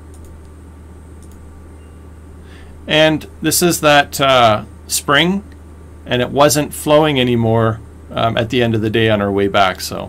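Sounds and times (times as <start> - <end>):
low electrical hum: 0.0 - 10.0
faint mouse clicks: 0.1 - 0.6, 1.2 - 1.4.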